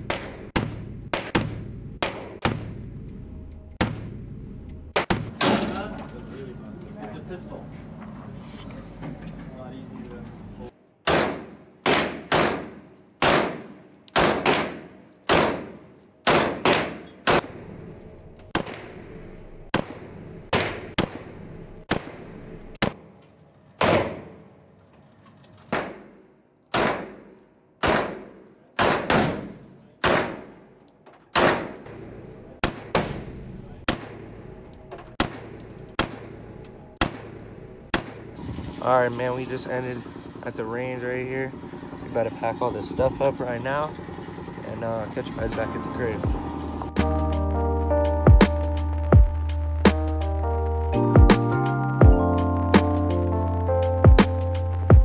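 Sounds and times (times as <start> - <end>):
pistol shots echoing indoors: 11.0 - 17.5, 25.7 - 30.7, 31.3 - 32.0.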